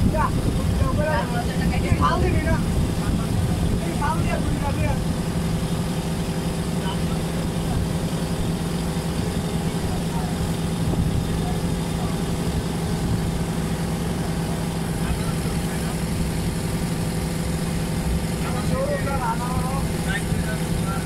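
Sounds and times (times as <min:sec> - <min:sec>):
boat engine droning: 0:00.0 - 0:21.0.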